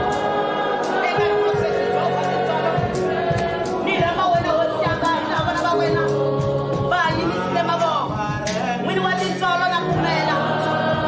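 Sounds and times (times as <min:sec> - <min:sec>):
choir singing a hymn: 0:00.0 - 0:11.0
low accompaniment: 0:00.0 - 0:11.0.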